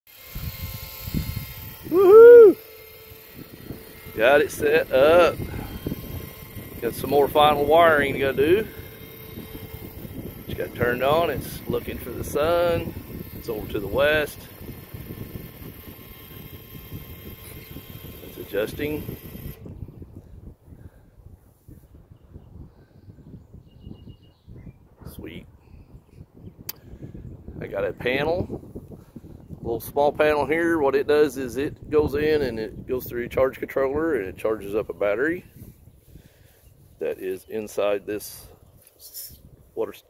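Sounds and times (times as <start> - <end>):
wind on microphone: 0.2 - 37.0.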